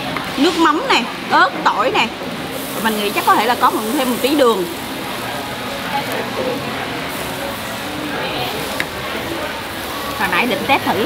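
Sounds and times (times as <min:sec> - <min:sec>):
meat sizzling on a grill: 0:00.0 - 0:11.0.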